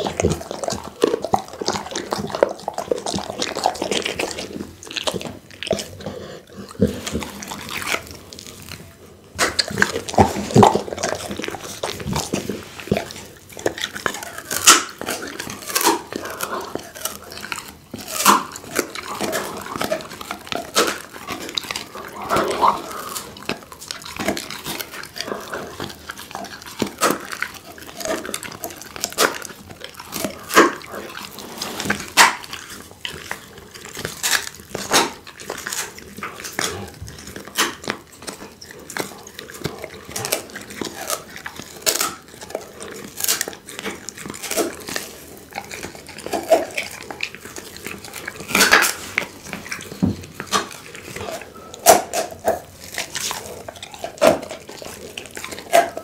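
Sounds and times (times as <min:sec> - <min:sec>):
dog chewing meat: 0:00.0 - 0:56.0.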